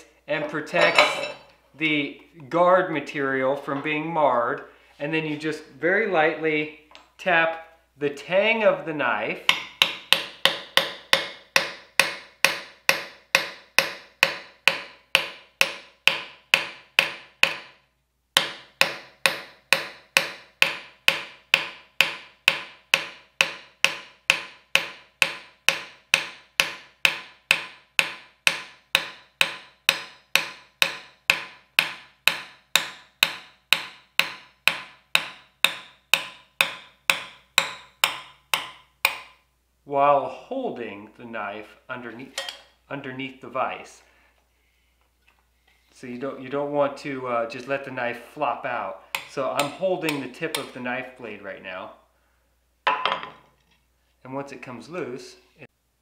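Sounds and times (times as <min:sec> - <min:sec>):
hammer tapping on steel: 0:09.5 - 0:17.7, 0:18.4 - 0:39.4, 0:49.2 - 0:50.7.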